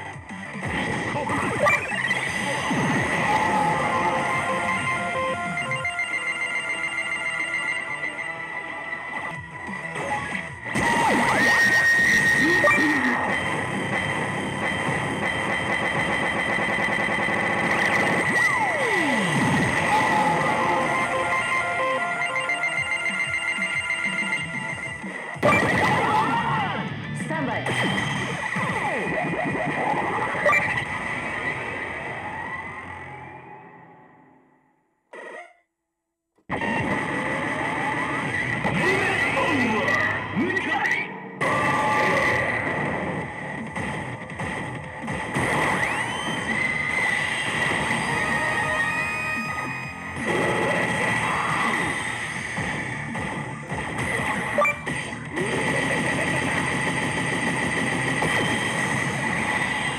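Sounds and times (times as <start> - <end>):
slot machine game music: 0.0 - 26.1
swooping electronic effects: 0.5 - 33.9, 41.4 - 59.9.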